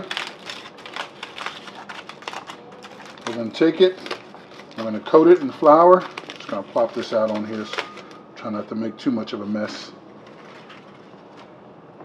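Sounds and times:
aluminium foil crinkling: 0.0s - 8.2s, 9.6s - 11.6s.

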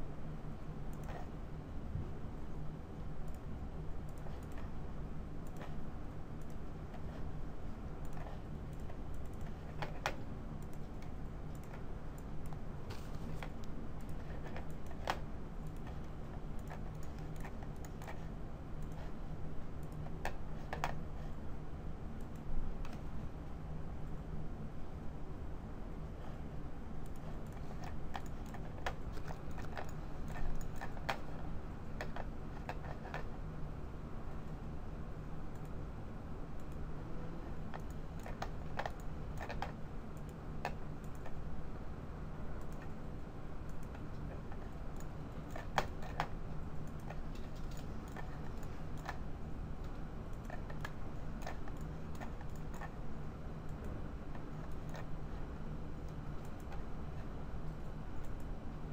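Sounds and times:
steady low hum: 0.0s - 58.9s
computer mouse clicks: 0.9s - 1.3s, 3.2s - 4.8s, 5.4s - 5.8s, 6.4s - 7.3s, 8.0s - 19.2s, 19.8s - 21.4s, 22.2s - 23.1s, 27.0s - 33.4s, 35.5s - 35.8s, 36.6s - 41.4s, 42.6s - 43.0s, 43.6s - 53.0s, 53.6s - 58.5s.

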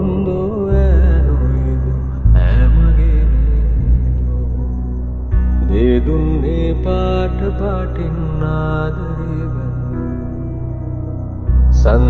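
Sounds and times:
gliding melody over deep bass: 0.0s - 12.0s.

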